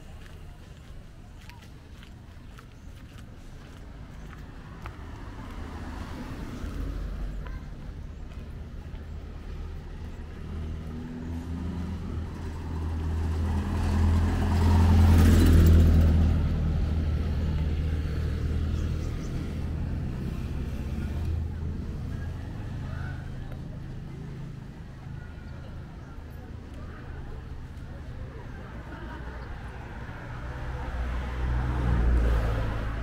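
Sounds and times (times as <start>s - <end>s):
vehicle engine driving past: 10.3s - 23.3s.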